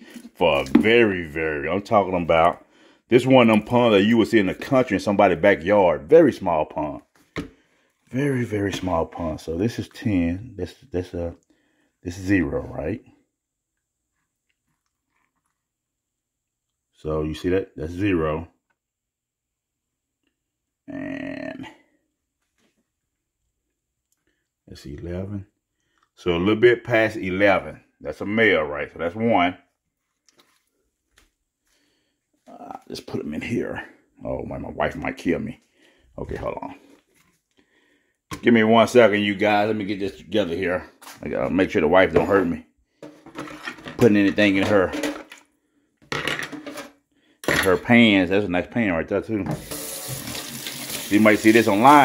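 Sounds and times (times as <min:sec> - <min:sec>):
man speaking: 0:00.2 - 0:07.1, 0:08.1 - 0:11.4, 0:12.0 - 0:13.1, 0:17.0 - 0:18.5, 0:20.8 - 0:21.8, 0:24.7 - 0:25.5, 0:26.2 - 0:29.6, 0:32.5 - 0:35.6, 0:36.2 - 0:36.9, 0:38.3 - 0:42.7, 0:44.0 - 0:45.1, 0:47.5 - 0:49.7, 0:51.1 - 0:52.0.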